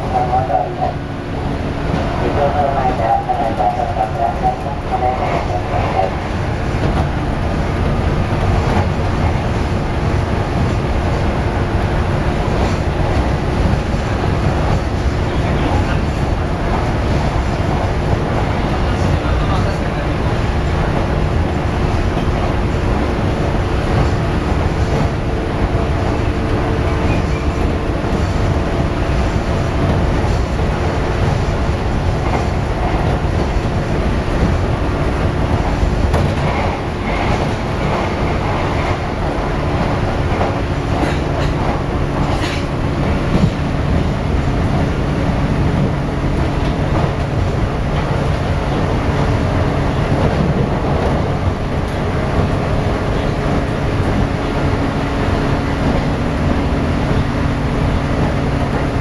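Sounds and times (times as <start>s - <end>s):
train wheels rumbling on rail: 0.0s - 59.0s.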